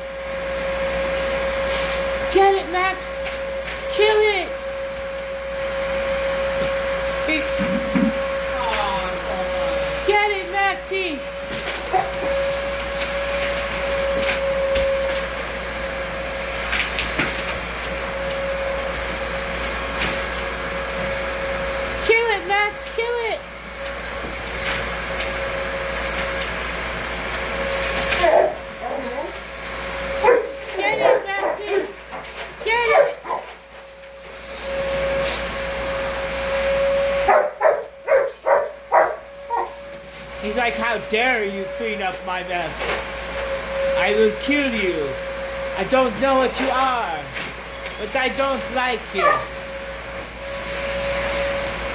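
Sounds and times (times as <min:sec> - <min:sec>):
vacuum cleaner motor whining: 0:00.0 - 0:51.9
dog barking: 0:11.9 - 0:12.2, 0:28.2 - 0:29.2, 0:30.2 - 0:31.6, 0:32.9 - 0:33.5, 0:37.3 - 0:39.8, 0:49.2 - 0:49.5.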